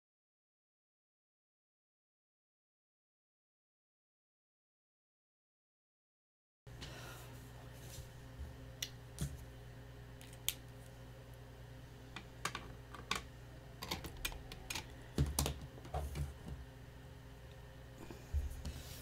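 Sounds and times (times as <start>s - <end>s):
low electrical hum: 6.7s - 19.0s.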